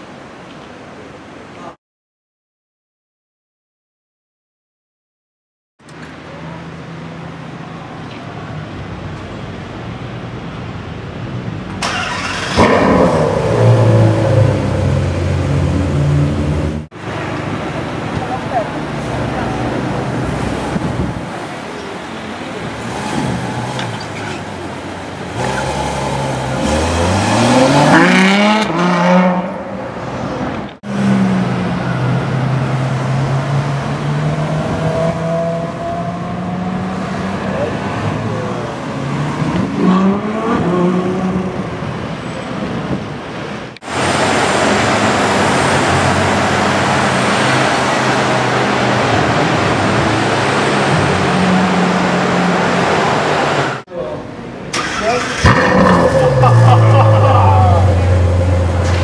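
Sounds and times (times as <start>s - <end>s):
car engine accelerating: 22.3s - 41.8s, 54.7s - 59.0s.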